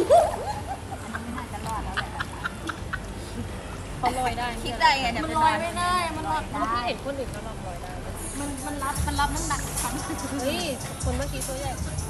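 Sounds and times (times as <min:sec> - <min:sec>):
woman laughing: 0:00.0 - 0:03.4.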